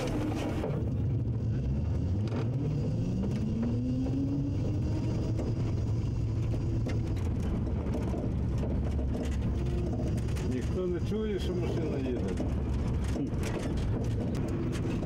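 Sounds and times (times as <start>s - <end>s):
continuous low rumble: 0.0s - 15.0s.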